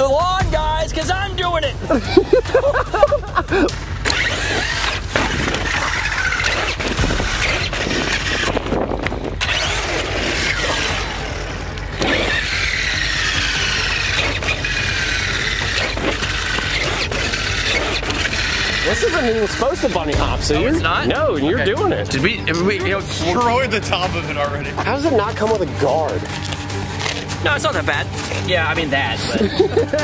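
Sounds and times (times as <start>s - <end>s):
toy truck electric motor whining: 4.0s - 20.2s, 26.2s - 28.8s.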